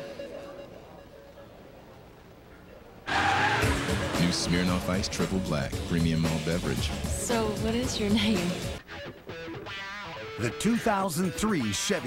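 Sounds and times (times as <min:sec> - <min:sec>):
car tyres squealing: 0:03.1 - 0:04.8
music: 0:03.6 - 0:12.0.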